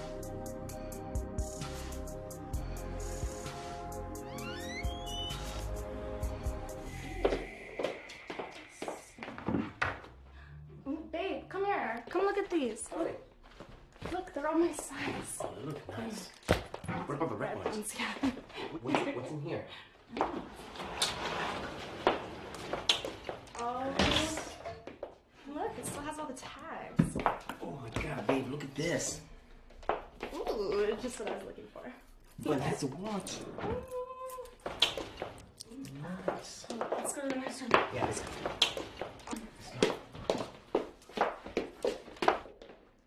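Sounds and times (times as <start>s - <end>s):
hurried footsteps: 36.2s - 42.9s.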